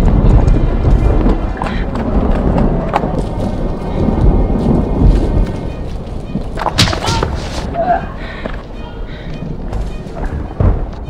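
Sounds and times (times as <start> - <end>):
loud deep rumble: 0.0 - 9.7.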